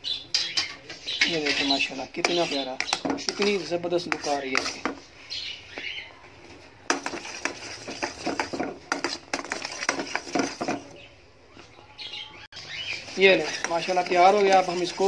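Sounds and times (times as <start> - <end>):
metal spoon scraping a pan: 0.3 - 5.2, 6.8 - 11.0, 12.7 - 15.0.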